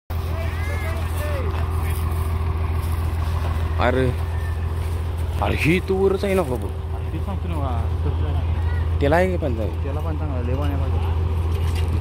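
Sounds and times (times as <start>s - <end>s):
drilling rig low drone: 0.1s - 12.0s.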